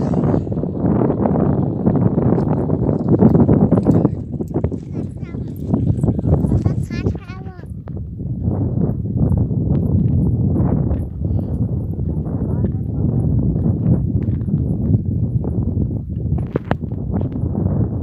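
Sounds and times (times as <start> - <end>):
steady rumbling noise: 0.0 - 18.0.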